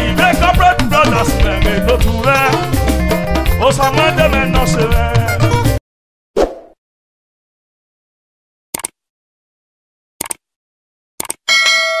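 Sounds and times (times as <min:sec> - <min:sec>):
quick clicks: 0:08.8 - 0:09.0, 0:10.2 - 0:10.4, 0:11.2 - 0:11.4
struck bell-like chime: 0:11.5 - 0:12.0.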